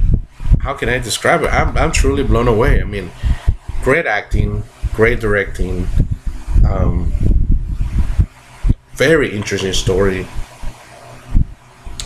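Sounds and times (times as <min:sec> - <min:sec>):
low thuds: 0:01.5 - 0:11.6.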